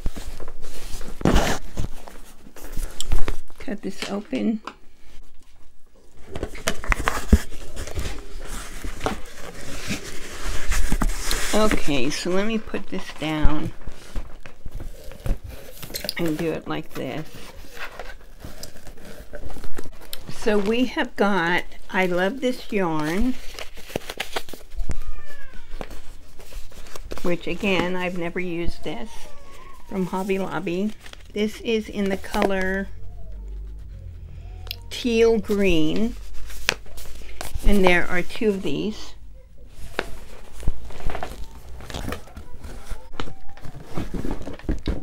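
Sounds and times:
cardboard rustling and scraping: 0:00.0 - 0:03.6, 0:05.0 - 0:45.0
cat meowing: 0:24.7 - 0:25.9, 0:32.9 - 0:35.3
handling clicks and rustles: 0:25.7 - 0:45.0.

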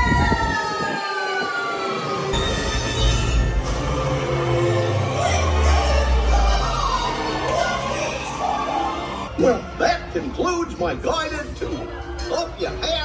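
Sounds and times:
descending pitched tone: 0:01.1 - 0:09.4.

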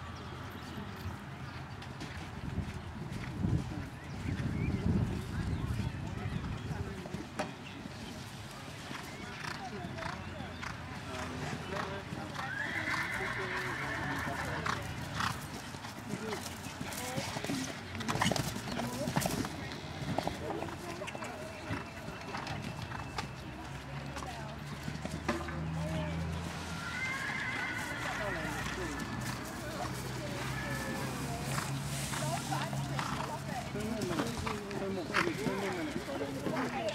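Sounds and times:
hoofbeats on turf: 0:01.0 - 0:36.9
horse whinnying: 0:12.4 - 0:14.7, 0:26.7 - 0:29.2
people talking: 0:16.1 - 0:24.6, 0:25.4 - 0:26.3, 0:28.0 - 0:36.9.

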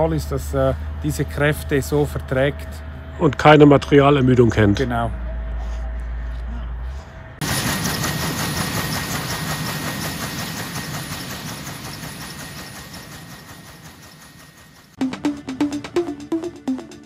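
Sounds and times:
helicopter rotor and turbine: 0:07.4 - 0:15.0.

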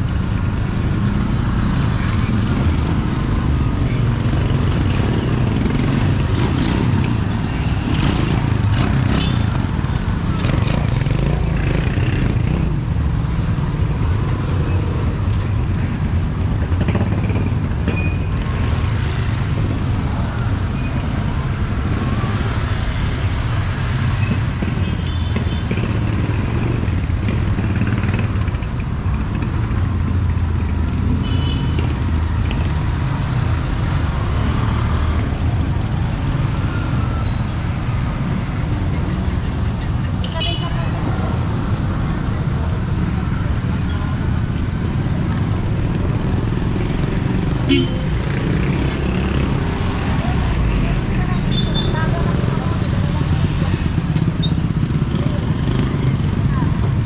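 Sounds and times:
motorcycles passing: 0:00.0 - 0:57.0
people talking: 0:50.2 - 0:54.0, 0:55.2 - 0:56.9.

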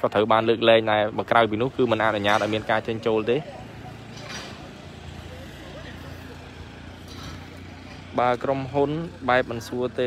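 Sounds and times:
vehicle engine humming: 0:00.0 - 0:10.0
faint background voices: 0:02.0 - 0:10.0.

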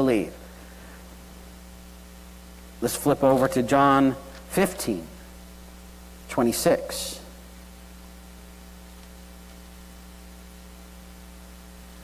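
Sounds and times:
electrical mains hum: 0:00.0 - 0:12.0.

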